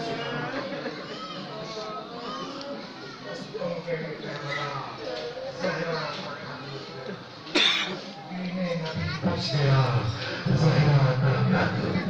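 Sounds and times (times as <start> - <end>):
faint voices: 0.0 - 12.0
sharp cough: 7.5 - 8.0.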